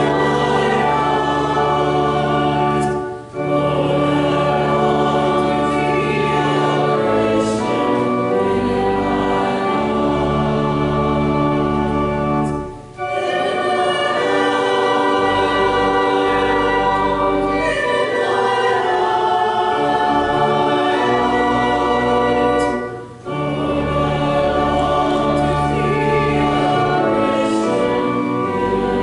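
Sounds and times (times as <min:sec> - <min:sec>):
choir singing a hymn: 0:00.0 - 0:29.0
low pipe organ tones: 0:00.0 - 0:29.0.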